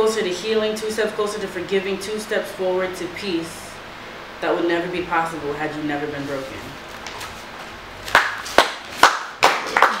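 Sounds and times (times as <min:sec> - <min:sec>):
person speaking: 0:00.0 - 0:03.8, 0:04.4 - 0:06.9
hand claps: 0:08.1 - 0:10.0.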